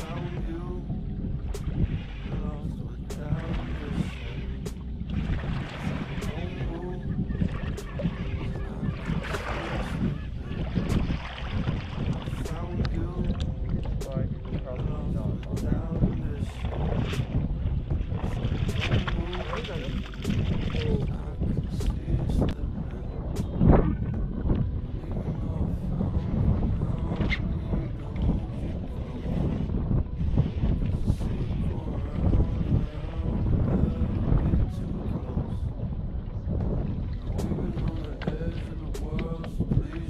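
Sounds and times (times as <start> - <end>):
wind noise on microphone: 0.0 - 40.0.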